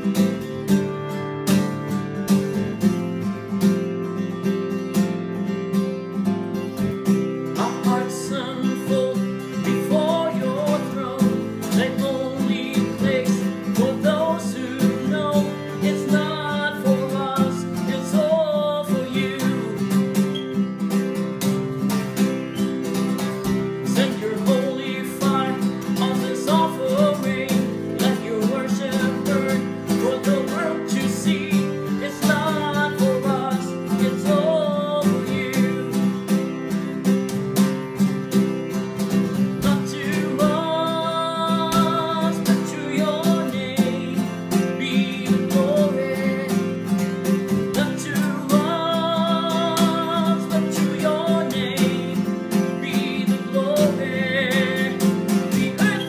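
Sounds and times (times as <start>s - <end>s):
acoustic guitar strumming: 0.0s - 56.0s
man singing: 7.0s - 20.5s, 23.0s - 36.9s, 39.0s - 56.0s.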